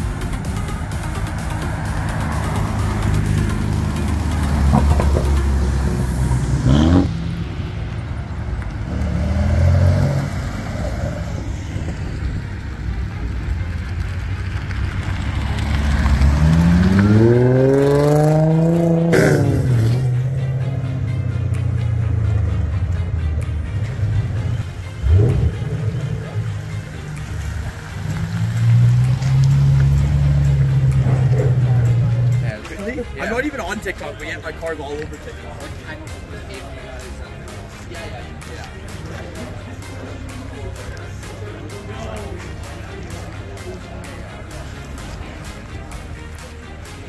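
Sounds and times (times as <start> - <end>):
car engines revving: 0.0 - 47.0.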